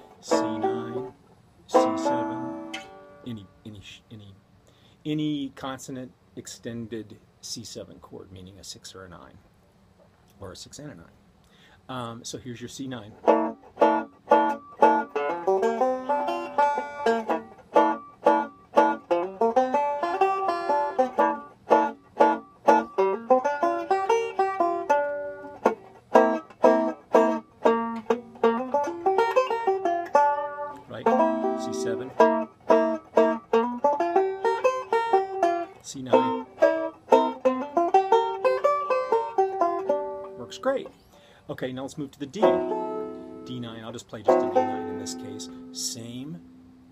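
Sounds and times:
banjo playing blues runs: 0.0 - 3.3, 12.6 - 40.9, 41.6 - 46.7.

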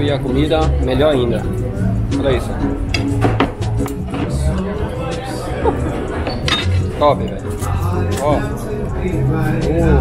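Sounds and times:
background music: 0.0 - 10.0
restaurant clatter: 1.0 - 8.7
person laughing: 5.5 - 6.0
glassware clinking: 6.2 - 6.9.

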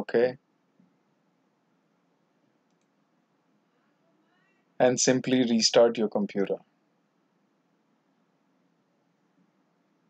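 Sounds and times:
faint mouse clicks: 2.6 - 3.0.

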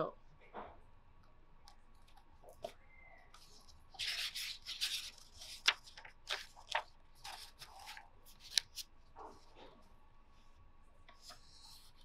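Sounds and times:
hands rubbing paper book: 3.4 - 9.6.

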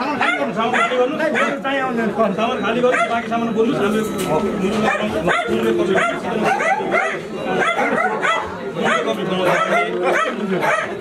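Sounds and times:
crowd arguing loudly: 0.0 - 11.0.

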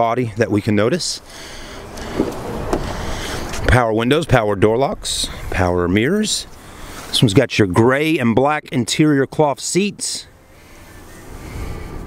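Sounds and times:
car door swinging open rustle: 2.0 - 3.7.

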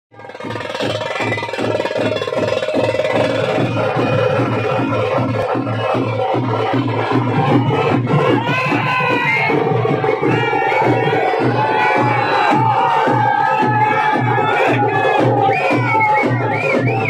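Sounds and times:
drum beat: 0.1 - 17.0.

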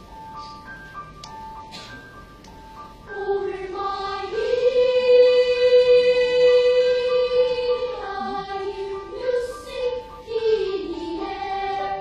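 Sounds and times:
children's choir singing: 3.1 - 12.0.

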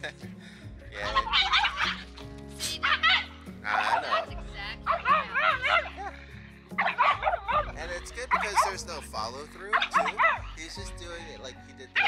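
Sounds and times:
dog barking and yipping: 4.9 - 6.0, 6.8 - 7.6.

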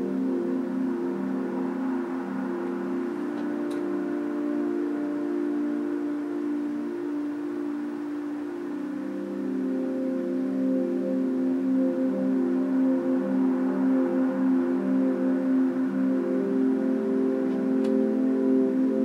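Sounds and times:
ambient drone music: 0.0 - 19.0.

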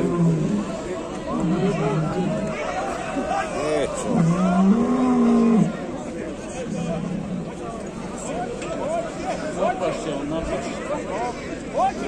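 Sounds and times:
bull bellowing: 0.0 - 0.6, 4.1 - 5.8
crowd voices overlapping: 0.0 - 12.0.

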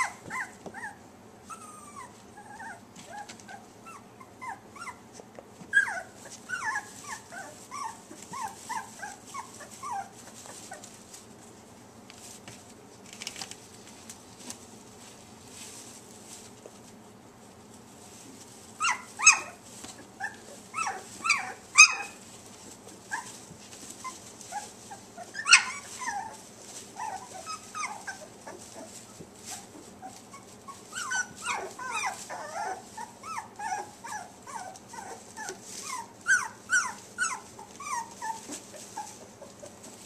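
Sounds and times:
puppies whimpering: 0.0 - 5.1, 5.7 - 10.9, 18.8 - 22.3, 23.0 - 39.9.

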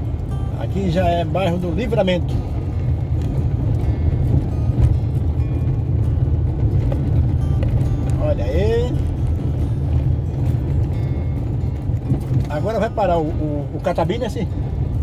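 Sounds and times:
car rumbling over stone paving: 0.0 - 15.0.

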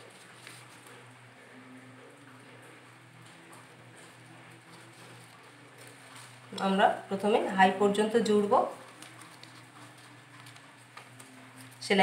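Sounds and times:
paper rustling: 0.0 - 1.1, 4.0 - 6.6, 8.5 - 11.8.

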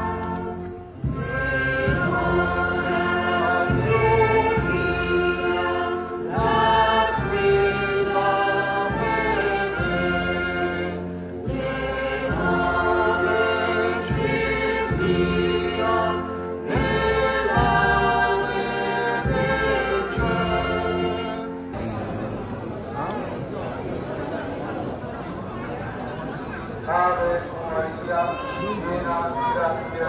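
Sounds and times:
choir singing a hymn: 0.0 - 21.7
instrumental accompaniment: 0.0 - 22.3.

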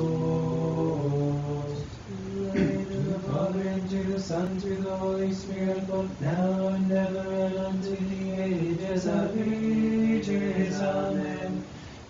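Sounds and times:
men chanting a hymn: 0.0 - 11.8.

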